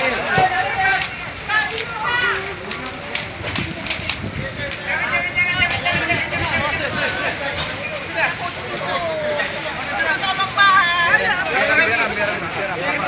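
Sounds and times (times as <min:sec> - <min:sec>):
people calling out: 0:00.0 - 0:03.0, 0:07.9 - 0:12.0
fire crackling and popping: 0:00.0 - 0:13.0.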